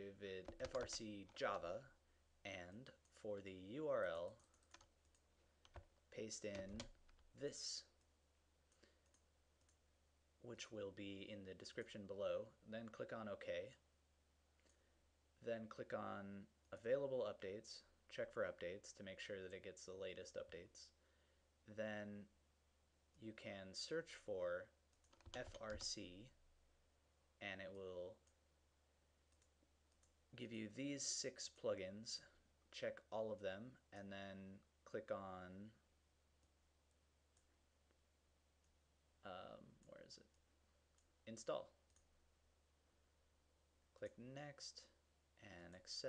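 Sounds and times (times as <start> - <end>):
computer mouse clicks: 0.4 - 1.0.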